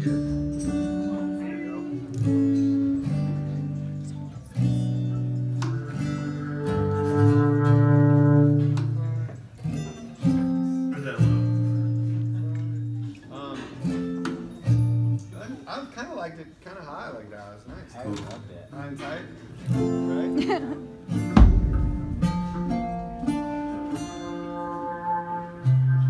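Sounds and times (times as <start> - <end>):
acoustic guitar strumming chords: 0.0 - 15.3, 19.6 - 26.0.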